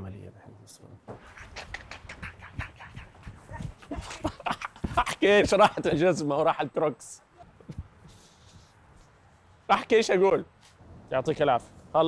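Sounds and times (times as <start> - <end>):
man panting heavily: 2.1 - 5.1
running footsteps on hard floor: 2.5 - 6.1.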